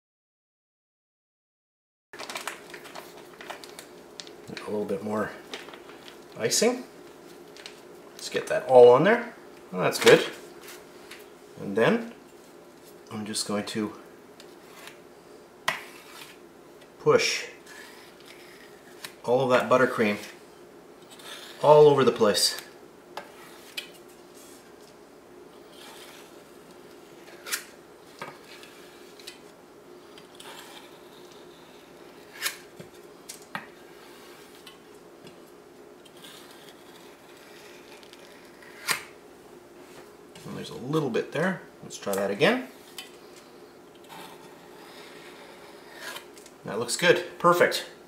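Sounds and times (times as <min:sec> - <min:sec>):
low steady hum: 0:02.2 - 0:48.0.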